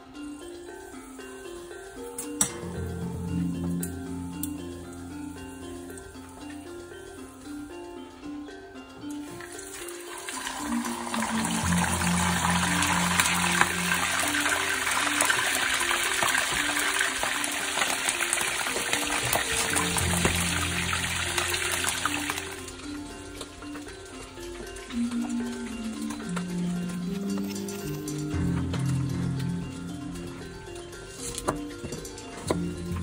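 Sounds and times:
fish sizzling in hot oil: 9.3s - 22.7s.

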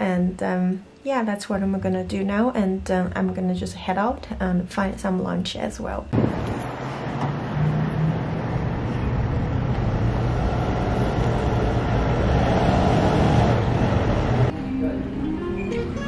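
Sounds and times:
road traffic hum: 6.2s - 14.5s.

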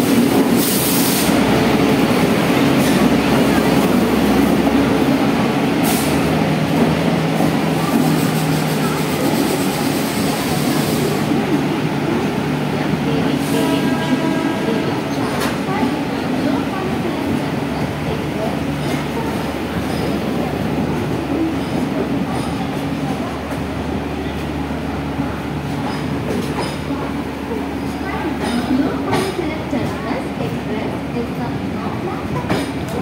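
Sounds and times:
train wheels rumbling on rails: 0.0s - 33.0s.

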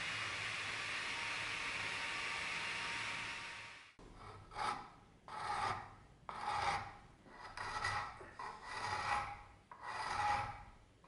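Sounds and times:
hand file rasping wood: 4.2s - 10.7s.

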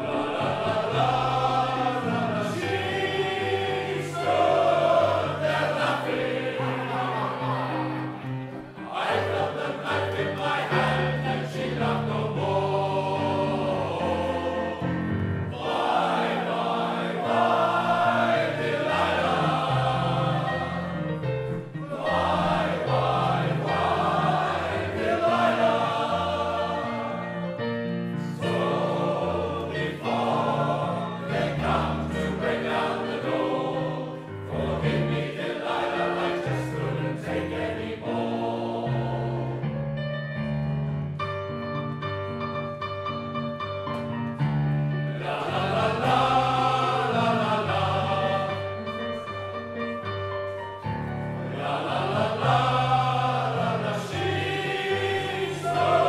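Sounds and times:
male choir singing in harmony: 0.0s - 39.8s, 44.4s - 56.0s.

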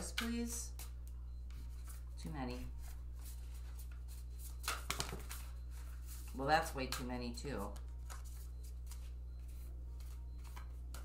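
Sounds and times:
steady low hum: 0.0s - 11.0s
cards snapping and rustling: 4.6s - 5.4s.

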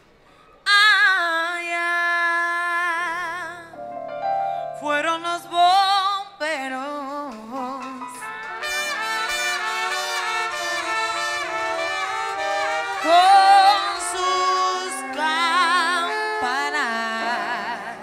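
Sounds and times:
person singing with vibrato: 0.7s - 8.4s, 12.2s - 18.0s
latin dance band playing: 7.8s - 18.0s
brass section chords: 8.2s - 18.0s.

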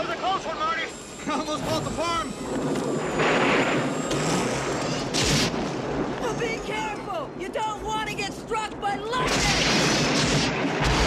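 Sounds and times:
rushing storm noise: 0.0s - 11.0s
thunderclap crack: 9.2s - 11.0s.

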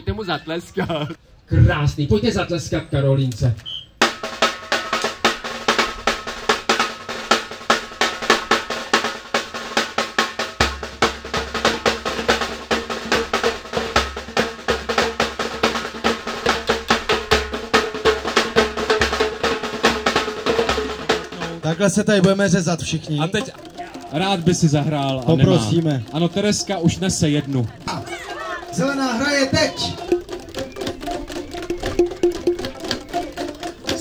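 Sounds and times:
drum band playing: 3.9s - 34.0s.

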